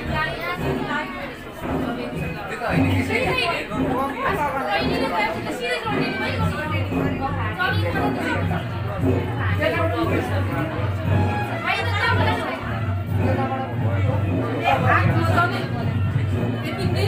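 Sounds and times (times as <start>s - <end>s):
people talking at once: 0.0s - 17.0s.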